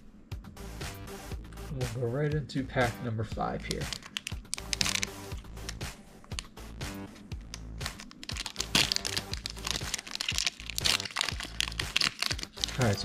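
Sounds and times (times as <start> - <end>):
background music: 0.0 - 13.0
foil pack crinkling: 3.7 - 5.8, 7.5 - 13.0.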